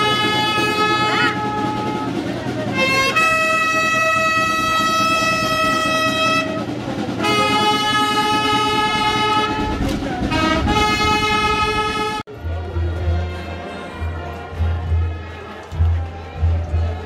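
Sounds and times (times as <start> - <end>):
wind instrument holding notes: 0.0 - 17.0.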